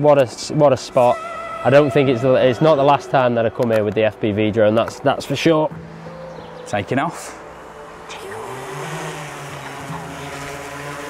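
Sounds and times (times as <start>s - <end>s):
drone propellers buzzing: 7.5s - 11.0s.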